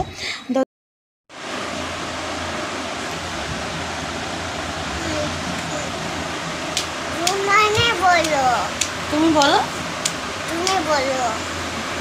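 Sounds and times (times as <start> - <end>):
low hum: 1.4 - 12.0
steady rushing hiss: 1.4 - 12.0.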